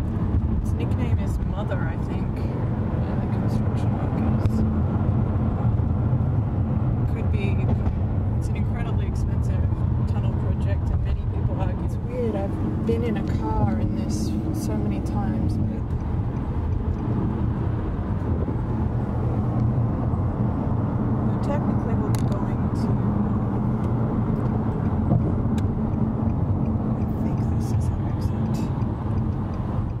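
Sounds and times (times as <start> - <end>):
car road and engine noise: 0.0 - 30.0.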